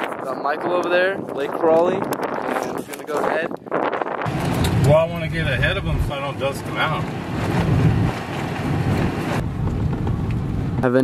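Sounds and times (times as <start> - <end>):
wind rushing over microphone: 0.0 - 11.0
truck road rumble: 4.2 - 11.0.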